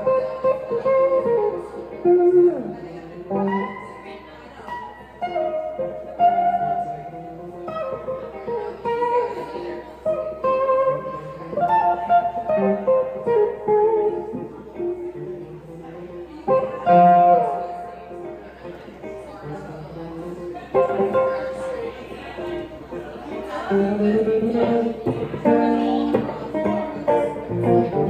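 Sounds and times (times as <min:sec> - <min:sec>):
funky electric guitar line: 0:00.0 - 0:28.0.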